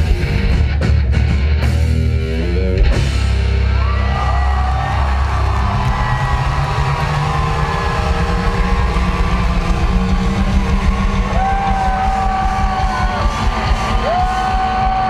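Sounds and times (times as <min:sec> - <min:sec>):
live rock band playing: 0:00.0 - 0:15.0
crowd voices: 0:03.3 - 0:15.0.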